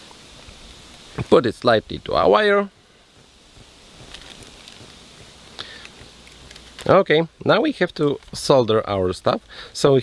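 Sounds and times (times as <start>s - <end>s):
faint steady hiss: 0.0s - 10.0s
cables clicking: 3.2s - 8.5s.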